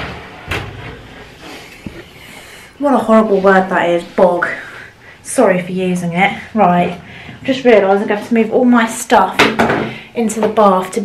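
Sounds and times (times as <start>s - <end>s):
faint movement noise: 0.8s - 8.8s.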